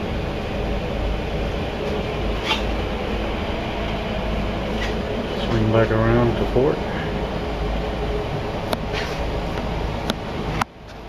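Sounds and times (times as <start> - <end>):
low machinery and ventilation hum: 0.0 - 11.0.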